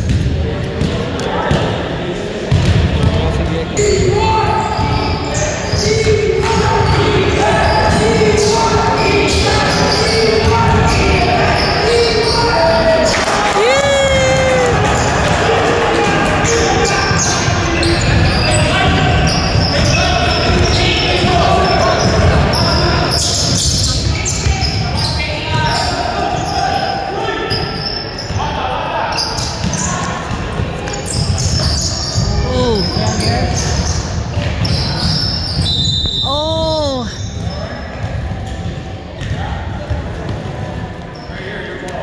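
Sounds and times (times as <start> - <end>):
sneaker squeaks: 3.8 - 13.0, 16.5 - 39.4, 41.1 - 41.4
people calling out: 13.5 - 14.8, 32.3 - 33.0, 36.2 - 37.2.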